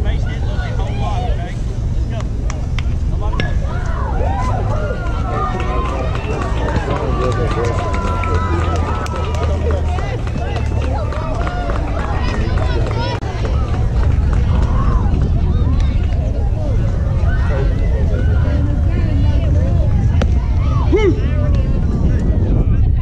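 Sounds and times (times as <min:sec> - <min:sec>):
low rumble: 0:00.0 - 0:23.0.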